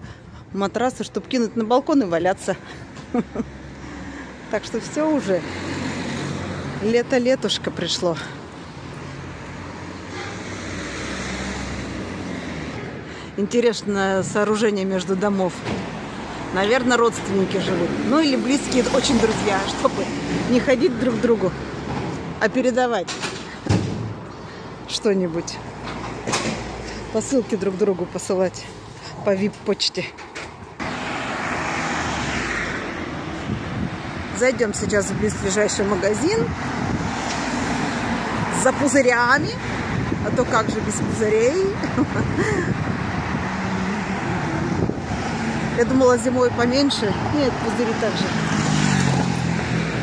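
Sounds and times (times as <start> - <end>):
vehicle engine and tyres passing: 3.1 - 13.1, 14.3 - 50.0
car driving past: 30.8 - 33.4, 47.9 - 50.0.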